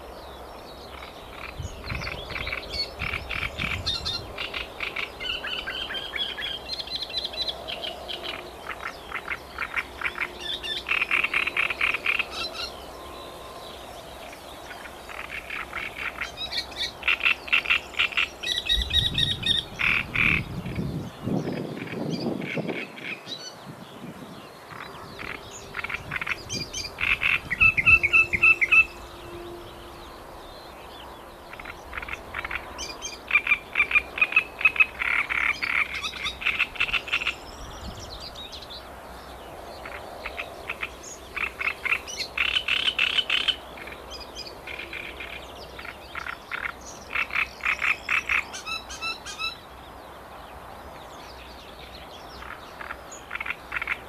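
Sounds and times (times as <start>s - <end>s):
frogs croaking: 0.0s - 23.3s, 24.5s - 37.6s, 38.2s - 54.0s
birds singing: 0.0s - 54.0s.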